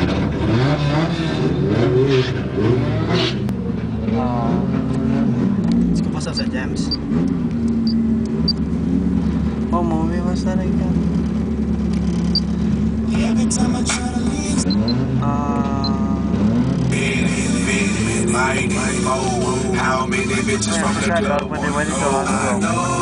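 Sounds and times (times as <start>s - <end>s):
car engines revving: 0.0s - 23.0s
voices calling out: 11.0s - 23.0s.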